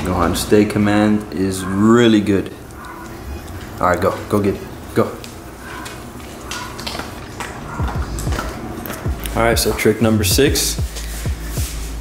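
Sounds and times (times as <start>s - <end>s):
dog claws clicking on floor: 2.7s - 9.4s
fur brushing microphone: 10.4s - 12.0s.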